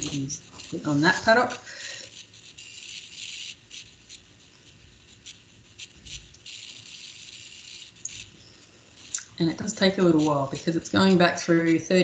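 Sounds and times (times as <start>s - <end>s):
faint rustling and rubbing: 0.0s - 12.0s.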